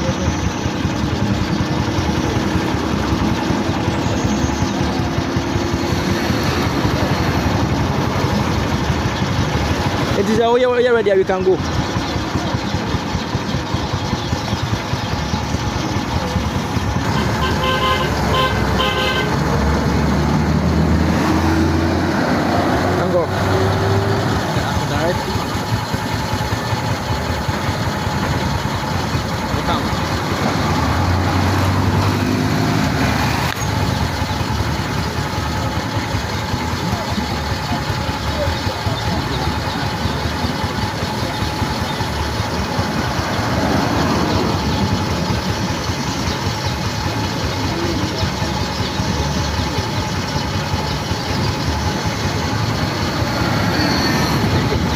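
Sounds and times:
people's voices: 0.0 - 54.9
vehicles driving past: 0.0 - 54.9.

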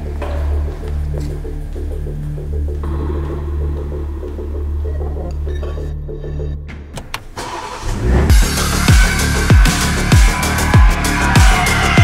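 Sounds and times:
car engine cranking and starting: 6.9 - 9.3
music with deep bass drum hits: 8.1 - 11.5.

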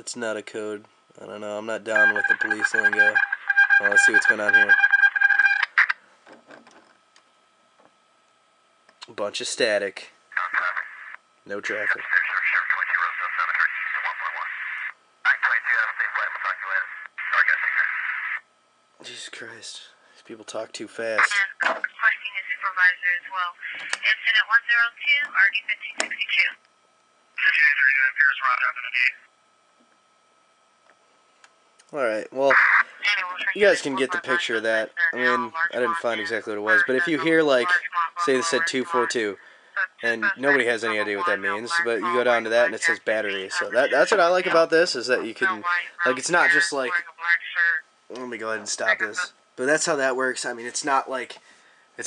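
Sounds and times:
faint steady whine: 0.0 - 52.0
loud steady electronic tone: 1.9 - 6.0, 32.5 - 47.1
police radio speech: 1.9 - 6.0, 10.3 - 18.4, 21.2 - 26.6, 27.4 - 29.2, 32.4 - 49.3
faint steady high tone: 2.0 - 5.6.

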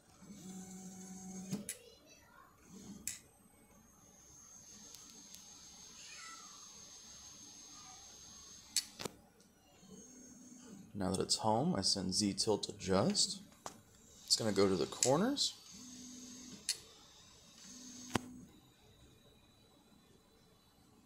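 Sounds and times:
faint high steady whine: 0.3 - 21.0
stepper motors whining: 14.1 - 18.4.

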